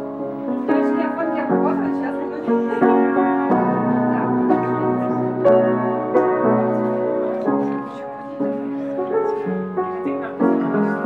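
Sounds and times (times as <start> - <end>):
piano chords ringing: 0.0 - 11.0.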